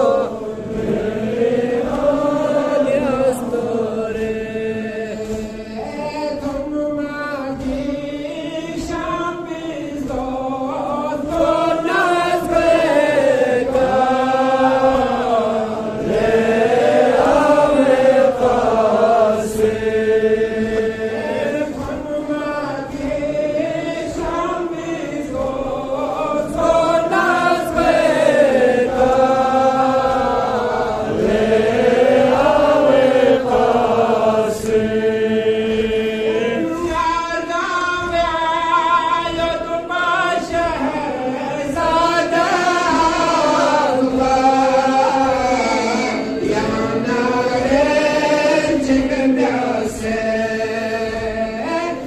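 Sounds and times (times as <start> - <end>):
man chanting into a microphone: 2.6 - 52.0.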